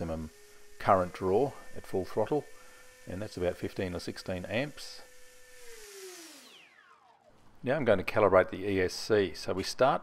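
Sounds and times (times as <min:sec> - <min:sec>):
electric motor and propeller whine: 0:00.0 - 0:07.4.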